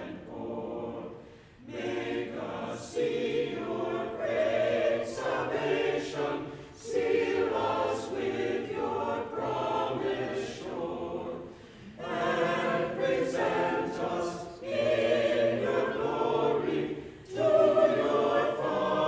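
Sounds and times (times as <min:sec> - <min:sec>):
church choir singing: 0:00.0 - 0:19.0.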